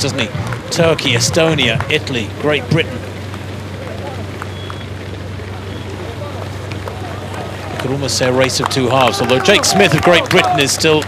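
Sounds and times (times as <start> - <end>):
faint voices: 0.0 - 11.0
low engine hum: 0.0 - 11.0.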